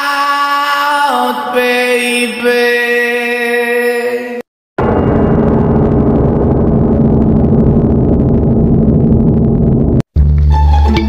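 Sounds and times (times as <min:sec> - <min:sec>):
horror low drone with rumble: 0:04.8 - 0:10.0.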